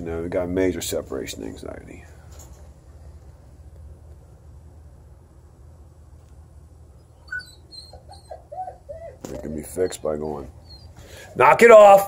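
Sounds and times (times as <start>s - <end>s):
dog whining: 7.0s - 11.2s.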